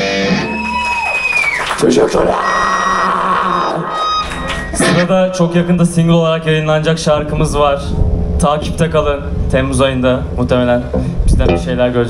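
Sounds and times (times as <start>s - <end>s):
electric guitars ringing note: 0.0s - 0.6s.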